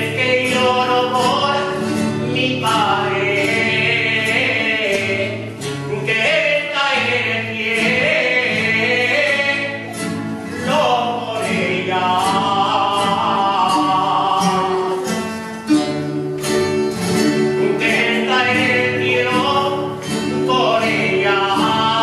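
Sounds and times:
acoustic guitar: 0.0s - 22.0s.

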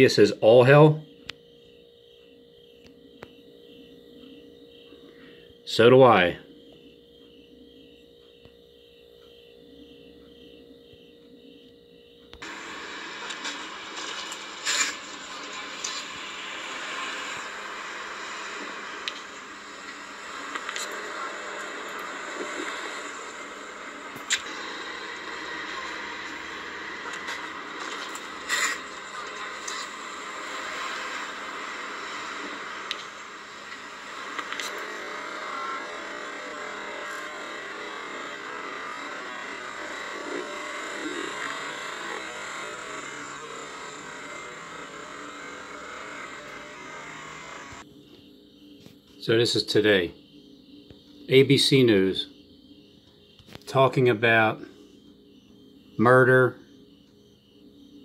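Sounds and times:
city traffic noise: 12.4s - 47.8s
sharp clicks: 24.1s - 24.6s, 32.4s - 38.4s.

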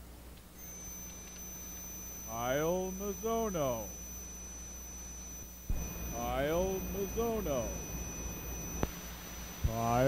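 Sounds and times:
faint low hum: 0.0s - 10.0s
high-pitched whine: 0.6s - 10.0s.

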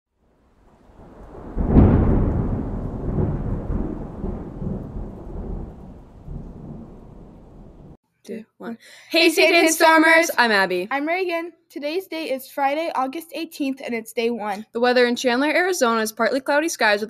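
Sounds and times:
thunderclap: 0.3s - 8.0s.

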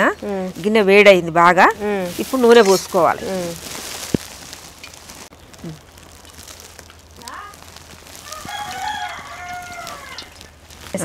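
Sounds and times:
rooster crowing: 8.2s - 10.4s.

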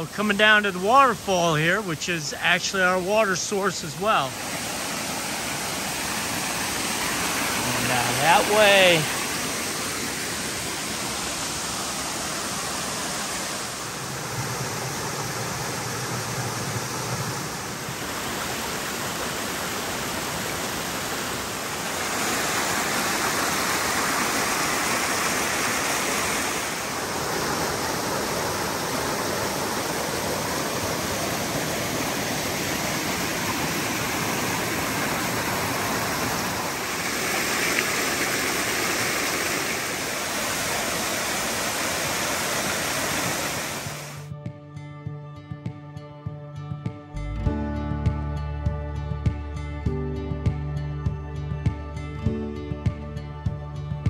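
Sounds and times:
water rushing over rocks: 0.0s - 44.3s.

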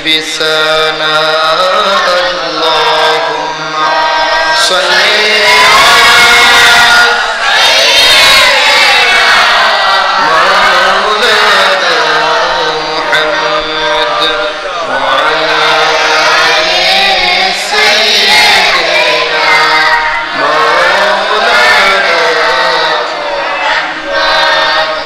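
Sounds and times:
man chanting melodic recitation: 0.0s - 3.8s, 4.5s - 7.3s, 10.2s - 23.4s.

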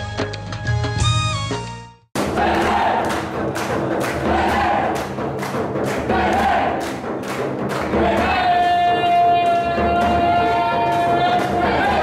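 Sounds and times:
group chanting in chorus: 2.2s - 3.4s, 4.0s - 5.2s, 5.9s - 7.1s, 7.8s - 8.7s, 9.8s - 12.0s
frame drum beating: 2.2s - 12.0s.

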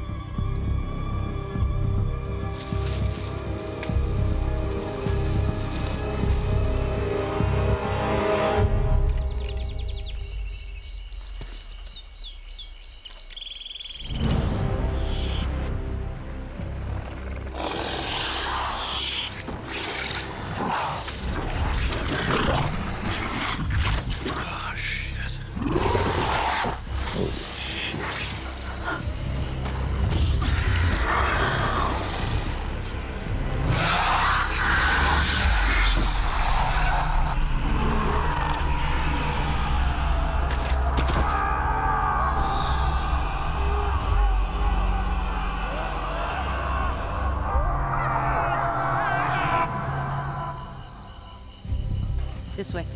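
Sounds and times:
tense film music: 0.0s - 52.9s
creature shrieks: 33.7s - 37.3s.

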